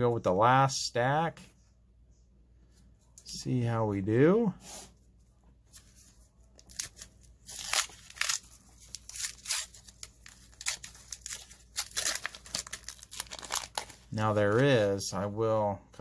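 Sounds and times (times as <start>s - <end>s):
wax-paper wrapper tearing and crinkling: 6.6s - 14.6s.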